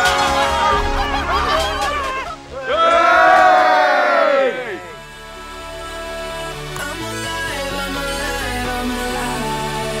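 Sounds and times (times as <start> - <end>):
group of people cheering: 0.0 - 5.0.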